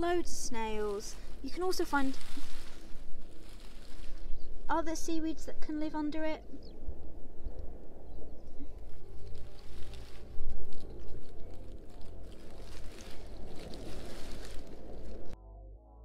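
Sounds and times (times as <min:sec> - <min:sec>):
hand rustling wet seaweed: 0:00.0 - 0:04.7, 0:08.7 - 0:15.4
soft music with low bass: 0:00.0 - 0:16.0.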